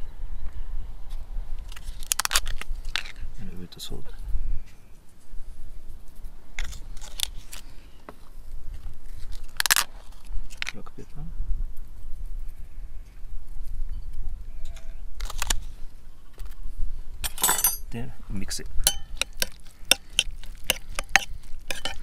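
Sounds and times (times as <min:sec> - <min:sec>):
wind rumbling on microphone: 0:00.0 - 0:04.7, 0:08.3 - 0:17.3
glass cups clicking: 0:18.9 - 0:22.0.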